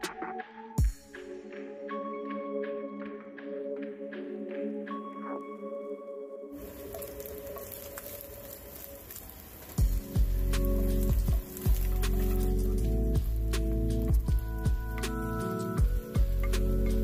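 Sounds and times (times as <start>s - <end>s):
background music: 0.0s - 17.0s
chicken sizzling in frying pan: 6.6s - 17.0s.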